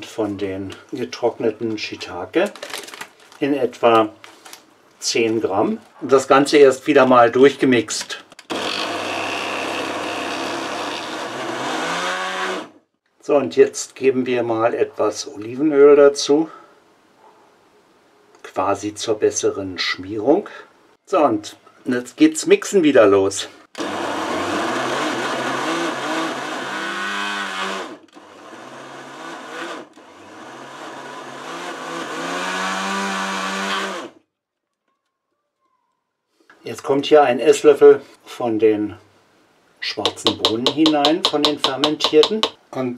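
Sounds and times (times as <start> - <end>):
food processor motor running: 8.5 - 12.7, 23.8 - 34.2.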